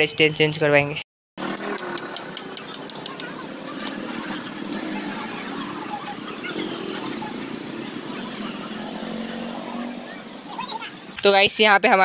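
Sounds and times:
street traffic: 0.0s - 12.0s
faint distant voices: 2.2s - 11.5s.

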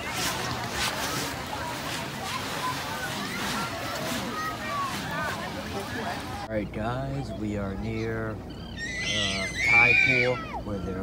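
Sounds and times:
people talking: 0.0s - 8.4s, 9.0s - 11.0s
surf: 0.0s - 11.0s
wind: 0.0s - 11.0s.

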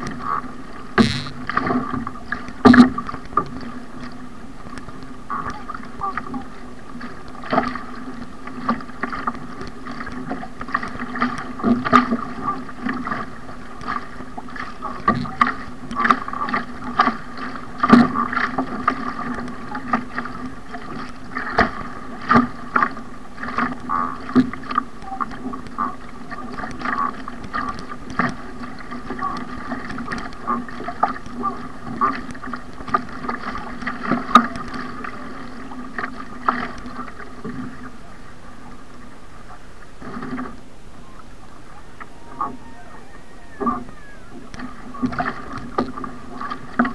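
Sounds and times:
paddle blades splashing: 0.0s - 46.9s
water rushing along hull: 0.0s - 46.9s
steady hum: 0.8s - 2.0s.

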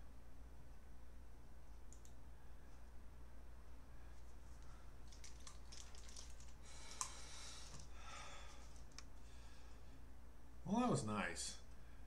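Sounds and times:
computer mouse clicking and rustling: 4.5s - 7.9s, 8.6s - 9.1s.

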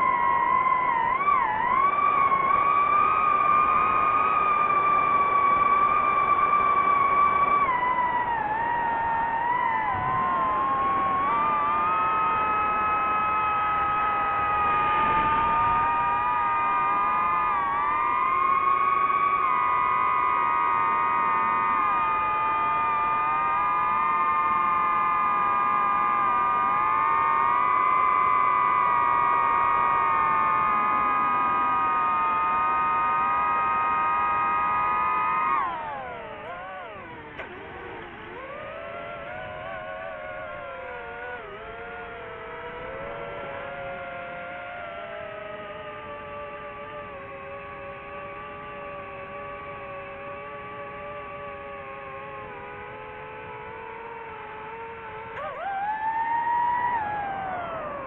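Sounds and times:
drone motors whining: 0.0s - 58.0s.

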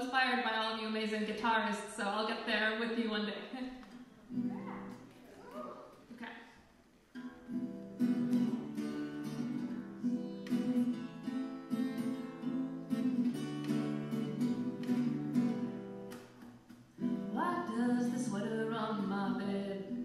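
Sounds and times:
acoustic guitar strummed: 7.2s - 20.0s.

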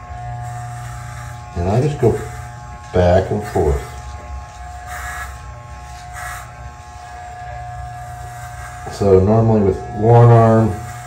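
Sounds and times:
hair trimmer buzzing: 0.0s - 11.0s.

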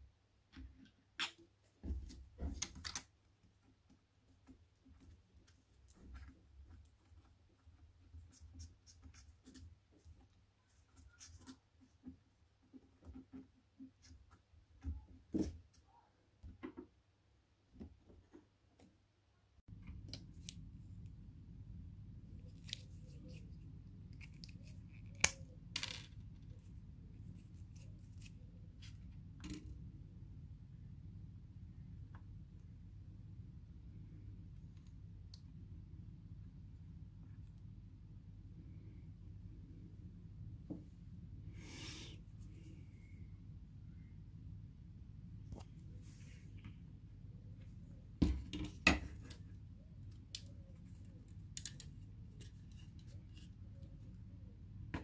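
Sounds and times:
low steady hum: 0.0s - 55.0s.

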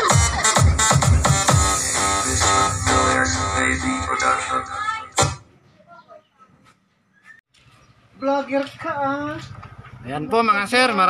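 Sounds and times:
loud electronic dance music with vocals: 0.0s - 5.4s.

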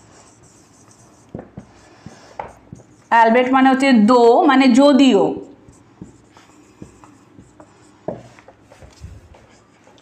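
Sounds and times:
pen scratching on paper: 0.0s - 3.4s, 5.5s - 10.0s
pen knock: 1.3s - 2.9s.

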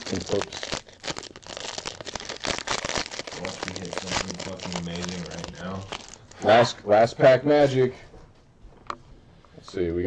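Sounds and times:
foil wrapper crinkling and tearing: 0.0s - 6.4s.

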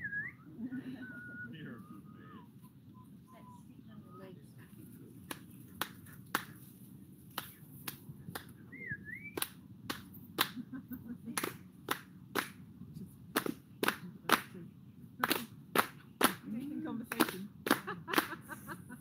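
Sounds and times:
people clapping in rhythm: 5.3s - 6.6s, 7.3s - 8.6s, 9.4s - 10.6s, 11.3s - 12.6s, 13.3s - 14.5s, 15.2s - 16.5s, 17.1s - 18.4s.

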